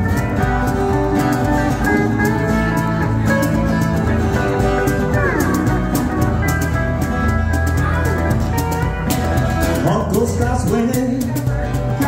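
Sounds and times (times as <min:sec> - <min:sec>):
cajon hand percussion: 0:00.0 - 0:12.0
pedal steel guitar sustained notes: 0:00.0 - 0:12.0
strummed acoustic guitar: 0:00.0 - 0:12.0.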